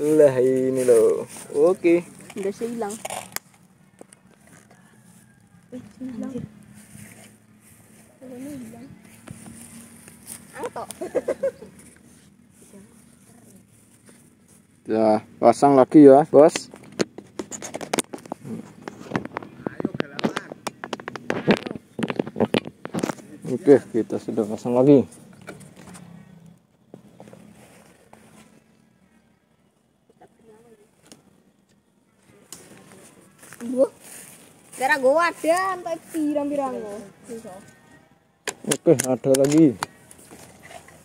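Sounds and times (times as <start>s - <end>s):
grass rustling and crackling: 0.0s - 29.4s, 30.2s - 41.0s
camera handling scrapes and clicks: 2.2s - 3.6s, 16.7s - 19.5s.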